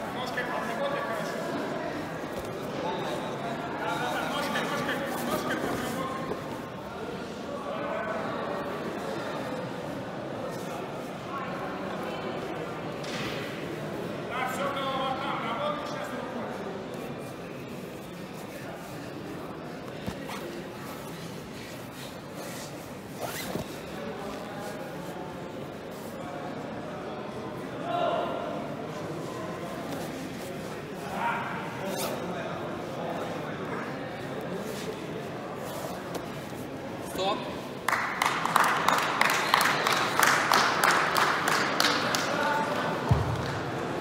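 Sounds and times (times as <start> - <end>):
large hall background noise: 0.0 - 44.0.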